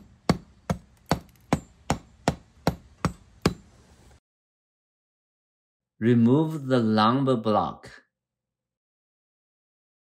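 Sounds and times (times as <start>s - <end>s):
hammer knocking on hard board: 0.0s - 3.7s.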